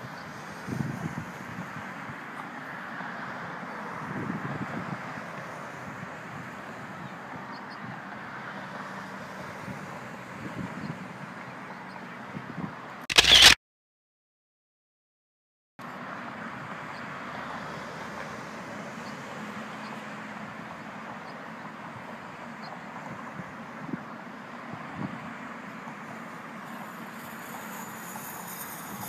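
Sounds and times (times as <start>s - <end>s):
distant road traffic: 0.0s - 13.5s, 15.8s - 29.0s
short loud burst: 13.1s - 13.6s.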